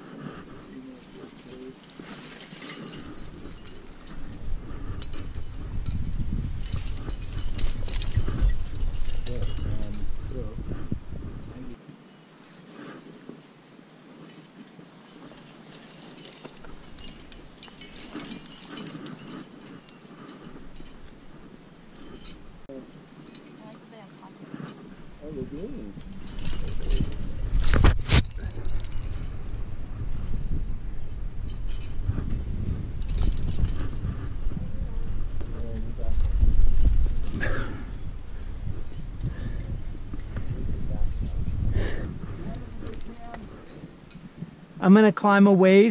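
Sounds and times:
climbing gear clinking: 0.0s - 11.8s, 12.4s - 45.0s
low rumbling and rubbing: 0.0s - 11.8s, 15.2s - 44.8s.

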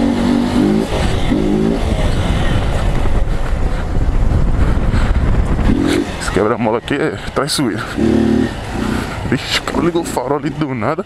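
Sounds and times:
motorcycle engine revving: 0.0s - 11.0s
wind and road noise rumble: 0.0s - 11.0s.

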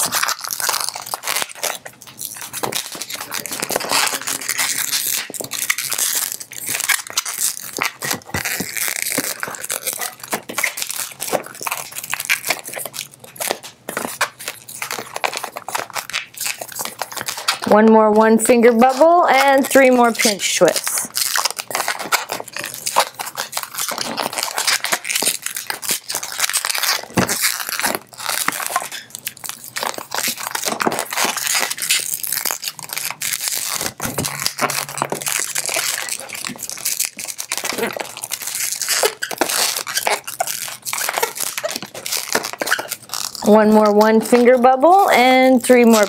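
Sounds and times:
balloon squeaking and crackling: 0.0s - 46.0s.

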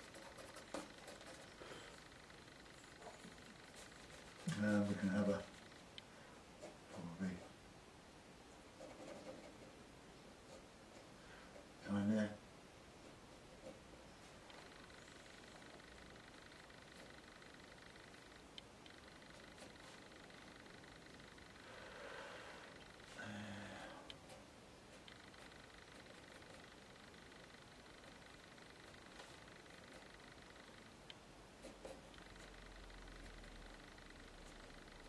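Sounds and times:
stylus scratching on paper: 0.0s - 2.1s, 2.8s - 5.8s, 6.6s - 7.6s, 8.7s - 9.8s, 31.6s - 33.5s
faint room hiss: 0.0s - 35.0s
faint ticks: 14.4s - 24.3s, 25.0s - 35.0s.

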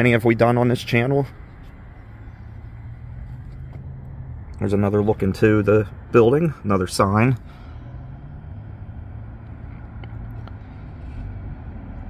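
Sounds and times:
constant low hum: 0.0s - 12.0s
road traffic rumble: 0.0s - 12.0s.

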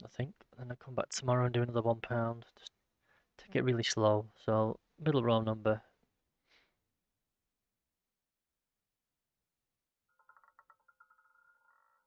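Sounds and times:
roulette ball ticking and ringing: 10.1s - 12.0s.

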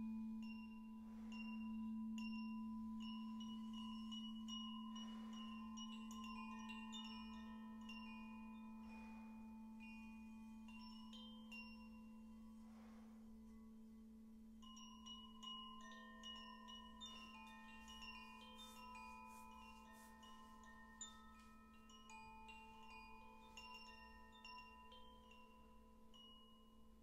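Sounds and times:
singing bowl humming: 0.0s - 27.0s.

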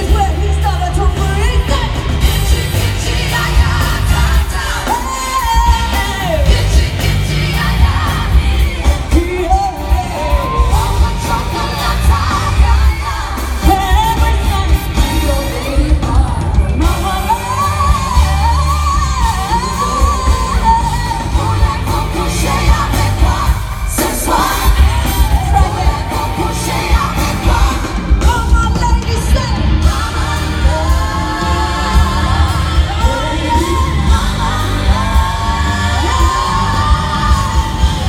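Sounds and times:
loud band with heavy bass beat: 0.0s - 38.0s
woman singing: 0.0s - 38.0s.

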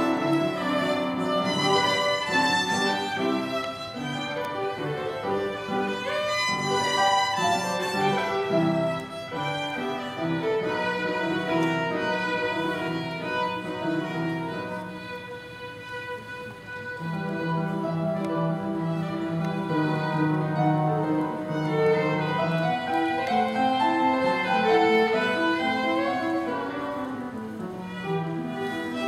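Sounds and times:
piano accompaniment: 0.0s - 29.0s
violin melody: 0.0s - 29.0s.

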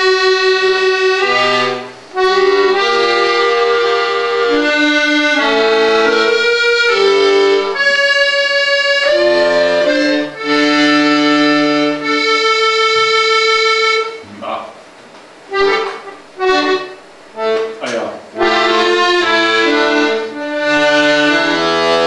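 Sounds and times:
accordion playing chords: 0.0s - 14.7s, 15.4s - 22.0s.

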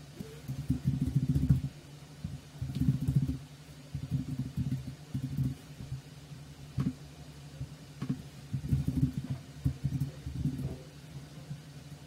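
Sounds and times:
low steady hum: 0.0s - 12.0s
computer keyboard typing: 2.6s - 3.4s.

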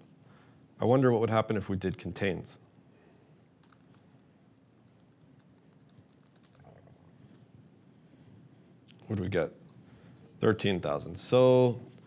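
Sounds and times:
keyboard typing clicks: 3.6s - 4.0s, 4.9s - 6.6s.

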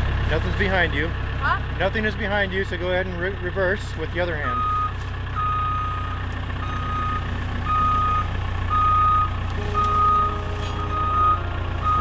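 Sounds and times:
diesel engine running: 0.0s - 12.0s
reverse alarm beeping: 4.5s - 12.0s.

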